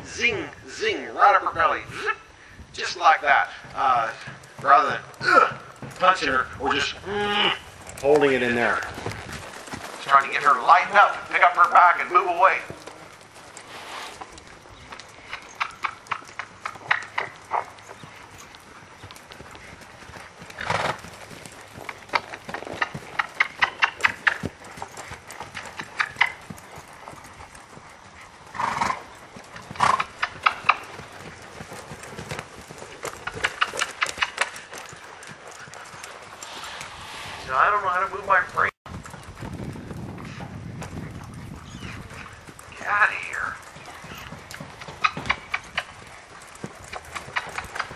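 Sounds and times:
horse hoofbeats on sand: 2.8s - 47.9s
tack rattling: 29.6s - 36.6s
person speaking: 37.4s - 38.8s.

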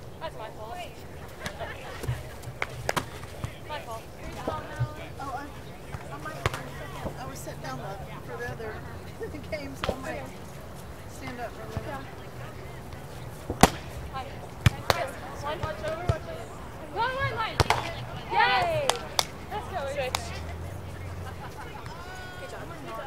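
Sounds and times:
players calling out: 0.0s - 23.0s
hands smacking a volleyball: 1.4s - 3.6s, 13.5s - 13.9s, 17.6s - 17.9s, 18.6s - 19.4s.

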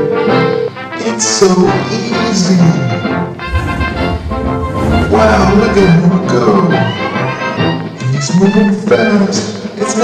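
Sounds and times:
background music with bass: 2.8s - 8.0s.

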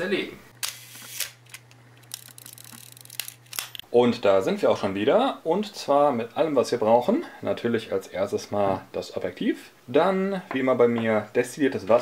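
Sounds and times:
steady low hum: 0.0s - 4.5s.

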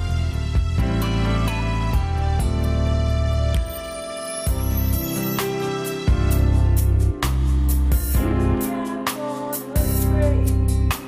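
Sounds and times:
deep bass notes: 0.0s - 3.8s, 4.5s - 5.1s, 6.1s - 8.6s, 9.8s - 11.0s.

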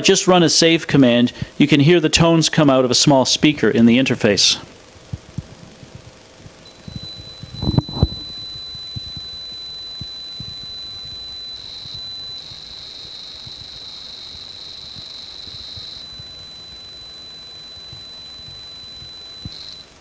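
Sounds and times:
steady high-pitched tone: 6.5s - 20.0s
warbling data burst: 6.6s - 20.0s.

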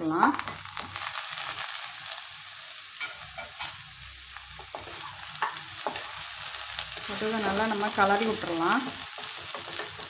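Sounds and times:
meat and onions sizzling in pan: 0.1s - 10.0s.

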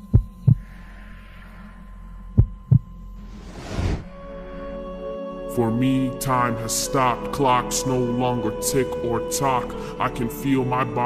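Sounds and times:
heartbeat thumps: 0.0s - 0.7s, 2.4s - 3.0s
rising whoosh: 3.2s - 5.1s.

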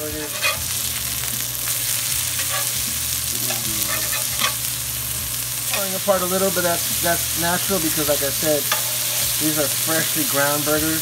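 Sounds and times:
metal spatula scraping griddle: 0.0s - 4.7s, 5.6s - 10.4s
meat sizzling on a griddle: 0.0s - 11.0s.

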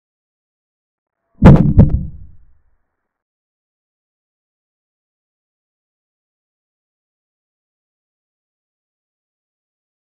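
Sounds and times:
low knocks: 1.4s - 2.4s.

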